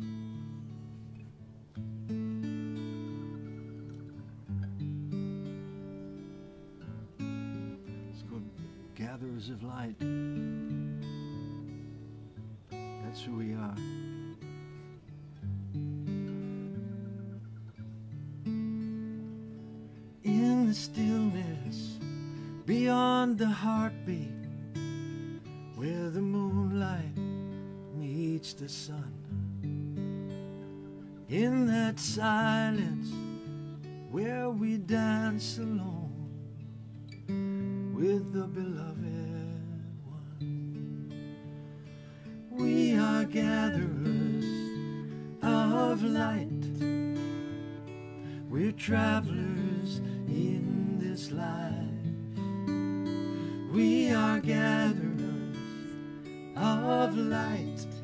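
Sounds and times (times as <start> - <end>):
acoustic guitar: 0.0 - 58.0.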